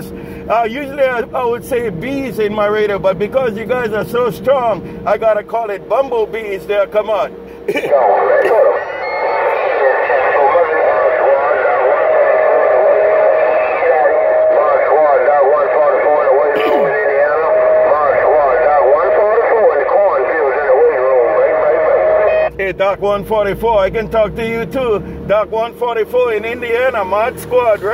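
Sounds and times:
jumble of voices over radio: 6.4 - 23.6
steady radio whistle: 7.9 - 22.6.

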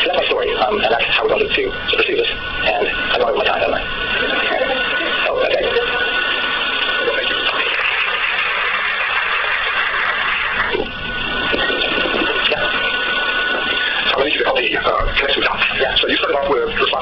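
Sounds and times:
dense noisy din: 0.0 - 17.0.

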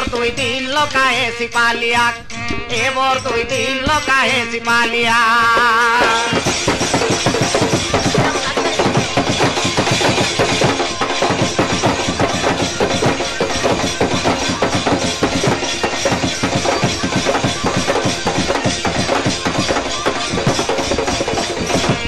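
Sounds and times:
instrumental folk drumming: 0.0 - 22.0.

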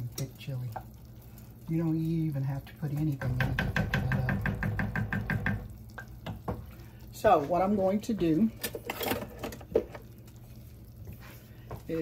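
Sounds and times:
wooden spoon knocking against pot: 3.0 - 6.7.

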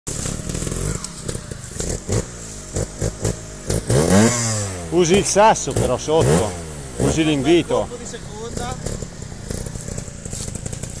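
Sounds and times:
motorcycle engine revving: 0.1 - 11.0.

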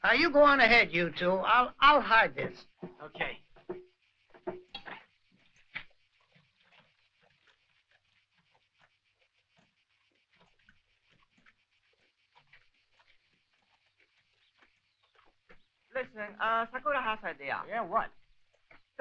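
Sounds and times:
small clicks and rustles: 2.7 - 16.0, 18.1 - 19.0.

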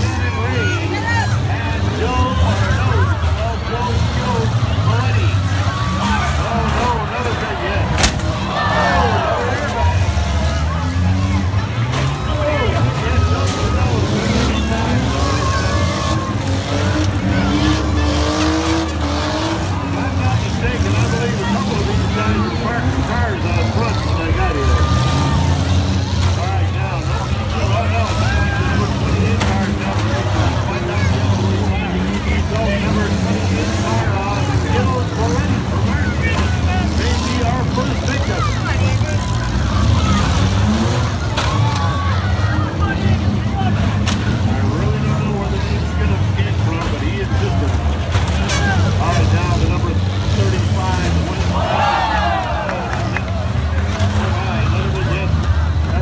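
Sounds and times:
car engines revving hard: 0.0 - 56.0
crowd shouting and cheering: 0.0 - 56.0
car collision impacts: 7.9 - 8.4.

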